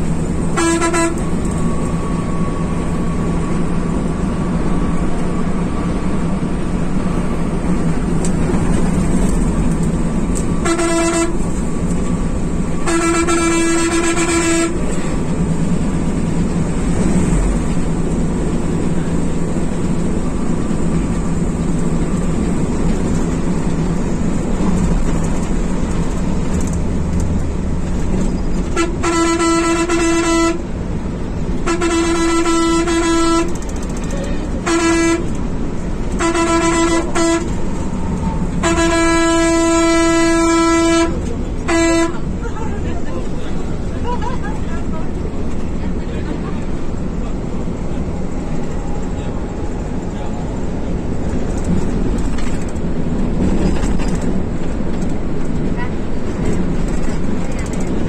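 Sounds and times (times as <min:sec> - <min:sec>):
coach engine and road rumble: 0:00.0 - 0:58.0
bus horn honking: 0:00.1 - 0:16.9, 0:28.0 - 0:54.3, 0:55.5 - 0:58.0.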